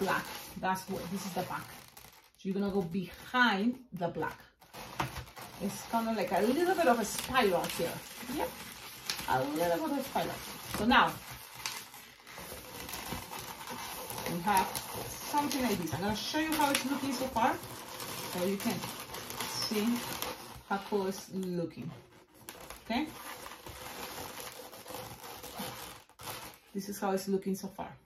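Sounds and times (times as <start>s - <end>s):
rubber balloons squeaking: 0.0s - 26.8s.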